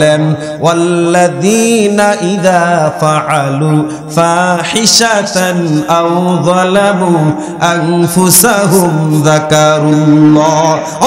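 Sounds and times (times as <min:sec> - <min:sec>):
man chanting melodically into microphone: 0:00.0 - 0:11.0.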